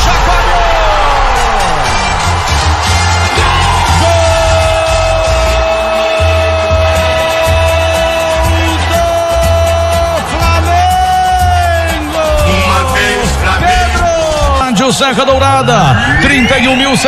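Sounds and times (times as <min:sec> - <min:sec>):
music with pulsing low beat: 0:09.4 - 0:14.7.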